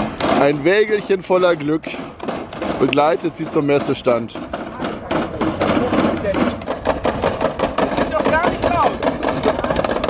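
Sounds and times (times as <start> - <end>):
dolly wheels rattling over bricks: 0.0 - 10.0
plastic crates rattling: 0.0 - 10.0.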